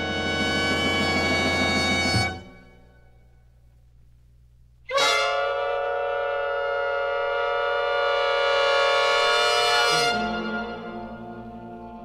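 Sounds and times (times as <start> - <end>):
jazz brass section sustained chord: 0.0 - 2.8, 4.9 - 12.0.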